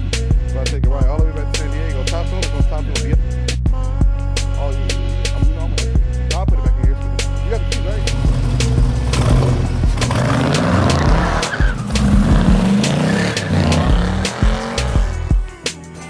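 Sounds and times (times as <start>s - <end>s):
background music with steady beat: 0.0s - 16.0s
car engine revving: 7.9s - 15.6s
tyres squealing: 8.0s - 15.0s.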